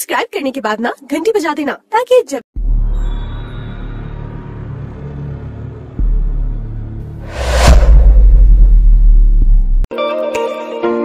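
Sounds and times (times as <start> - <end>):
low drone: 7.2 - 9.4
deep bass boom: 7.2 - 9.9.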